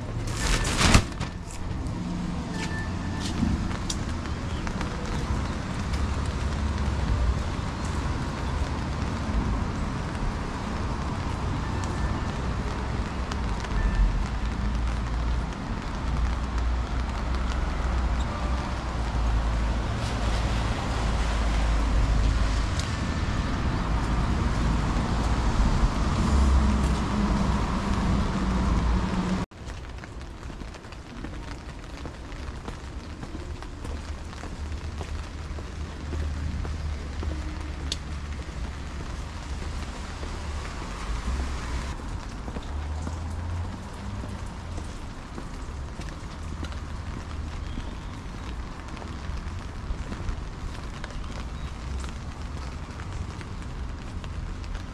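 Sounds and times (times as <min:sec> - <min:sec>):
traffic: 0:00.0 - 0:54.9
wind rumbling on microphone: 0:00.0 - 0:54.9
rain hiss: 0:30.9 - 0:54.9.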